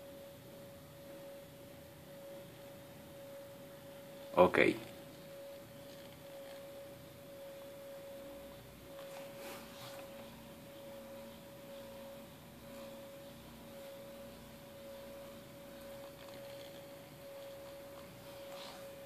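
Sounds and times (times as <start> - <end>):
spindle motor whine: 0.0 - 19.0.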